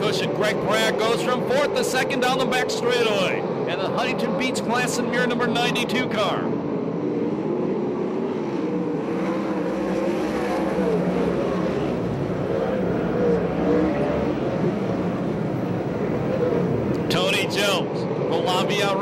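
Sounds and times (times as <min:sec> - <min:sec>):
race car engines: 0:00.0 - 0:19.0.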